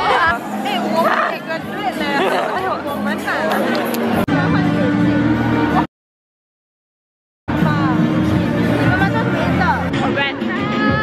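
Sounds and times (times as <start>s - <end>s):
crowd babble: 0.0s - 5.9s, 7.5s - 11.0s.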